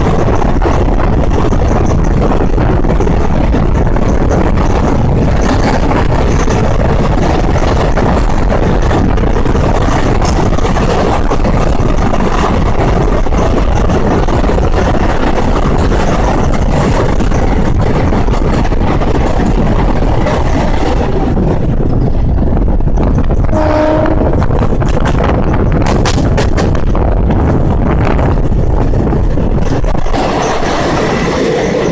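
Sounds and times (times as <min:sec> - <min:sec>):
train wheels rumbling on rail: 0:00.0 - 0:31.9.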